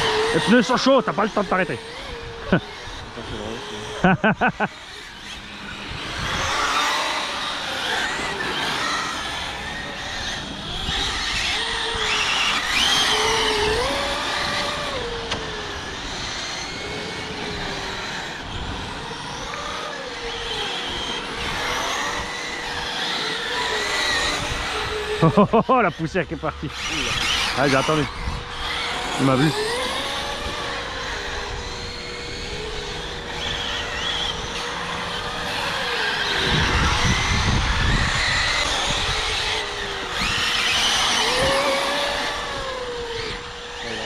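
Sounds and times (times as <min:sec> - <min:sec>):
rc car motors whining: 0:00.0 - 0:44.0.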